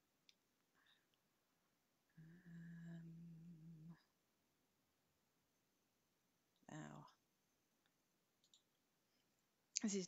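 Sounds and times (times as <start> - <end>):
person humming: 2.1 - 4.2.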